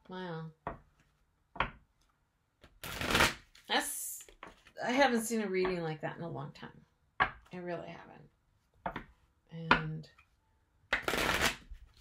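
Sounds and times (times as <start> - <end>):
cards being shuffled: 2.6 - 4.8, 10.9 - 12.0.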